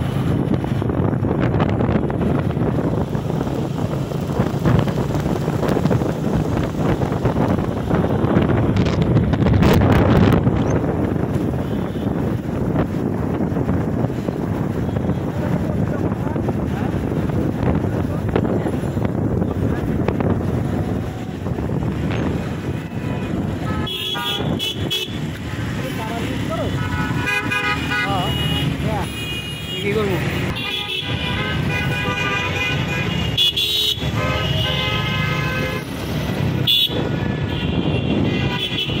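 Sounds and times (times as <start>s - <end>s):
wind and road noise: 0.0s - 39.0s
vehicle horns honking: 22.7s - 25.3s, 26.6s - 36.0s, 36.6s - 39.0s.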